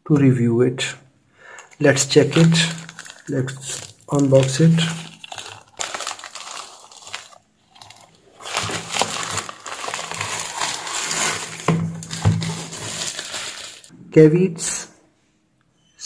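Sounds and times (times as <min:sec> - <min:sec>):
plastic crinkling and rustling: 0:01.6 - 0:13.9.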